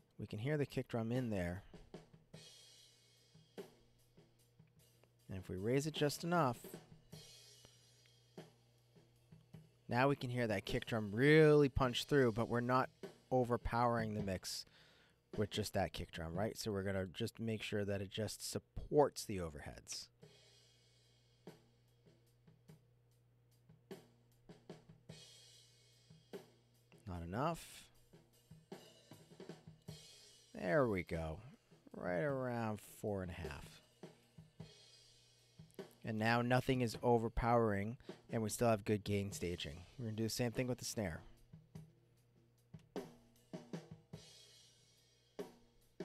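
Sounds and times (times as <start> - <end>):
drum kit playing: 0.0 - 14.6, 15.3 - 16.8, 19.6 - 22.8, 23.5 - 46.0.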